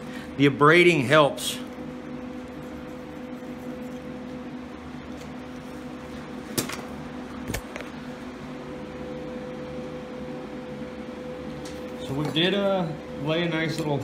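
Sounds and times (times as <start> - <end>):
electrical fan hum: 0.0 - 14.0.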